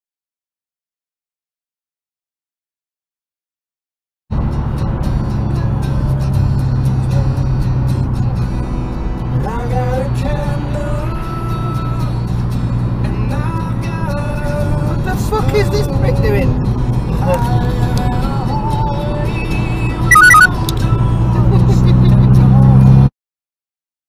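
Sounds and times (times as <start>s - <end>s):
low drone of road noise: 4.3s - 23.1s
music from car radio: 14.1s - 22.8s.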